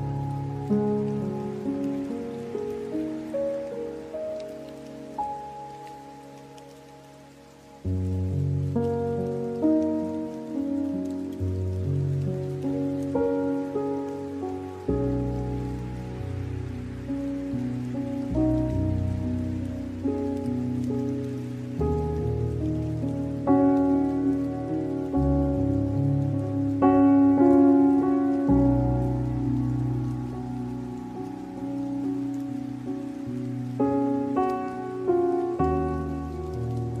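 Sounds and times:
gentle meditation music: 0.0 - 37.0
rain: 0.0 - 37.0.

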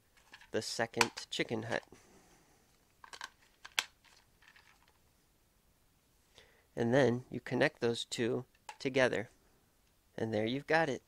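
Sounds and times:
plastic toy parts clicking and scraping: 0.1 - 1.9, 3.0 - 5.0.

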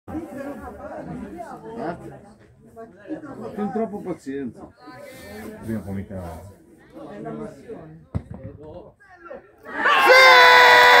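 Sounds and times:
loud long shout: 9.7 - 11.0.

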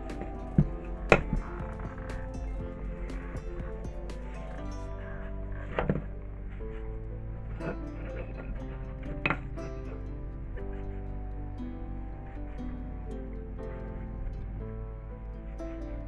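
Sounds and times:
background music with steady beat: 0.0 - 8.4.

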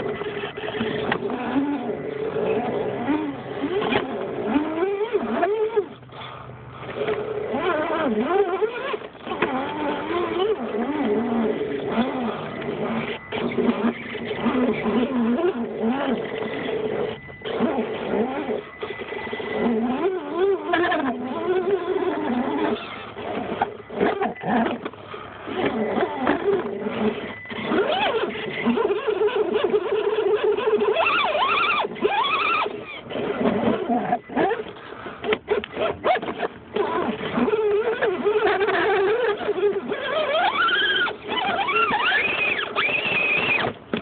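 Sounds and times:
rc car electric motor whining: 0.0 - 44.0.

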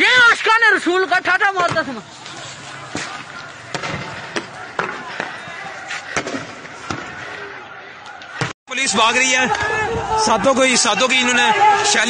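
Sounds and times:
distant crowd noise: 1.1 - 12.0.

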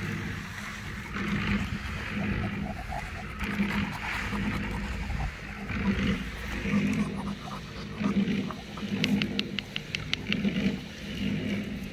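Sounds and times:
puppy growling: 0.8 - 10.7.

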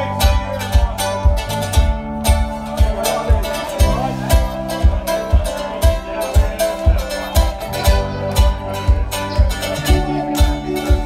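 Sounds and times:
live roots band playing: 0.0 - 11.0
steady kick drum: 0.0 - 11.0.

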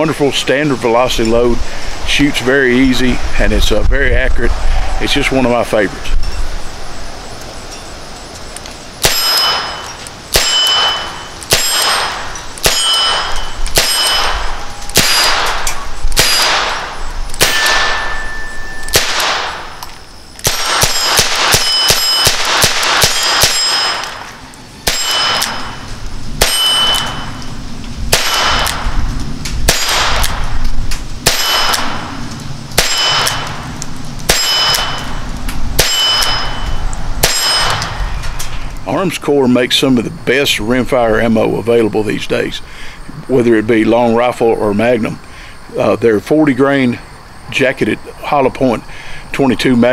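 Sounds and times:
metallic ring: 9.0 - 19.0, 20.0 - 22.4, 23.0 - 24.3, 24.9 - 27.6, 34.3 - 38.0
revolver gunshots: 9.0 - 19.8, 20.4 - 27.4, 28.1 - 29.0, 29.6 - 30.6, 31.2 - 36.6, 37.2 - 38.2.

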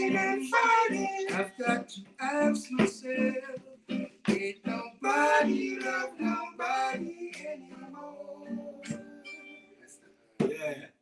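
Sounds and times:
strummed acoustic guitar: 0.0 - 9.7
vocal group singing: 0.0 - 10.0.

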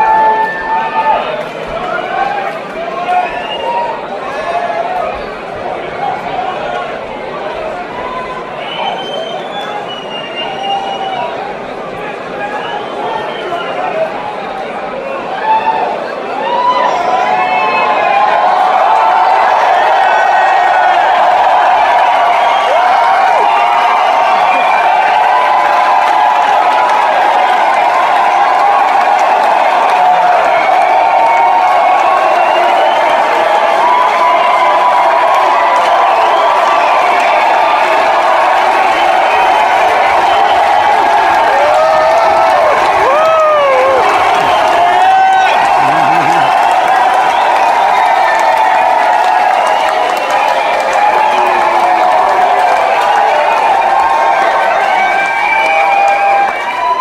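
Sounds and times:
crowd cheering and shouting: 0.0 - 57.0.

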